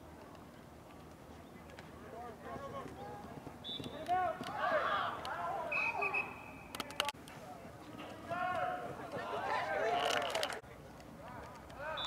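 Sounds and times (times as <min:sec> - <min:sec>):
distant shouting voices: 0:02.6 - 0:06.8.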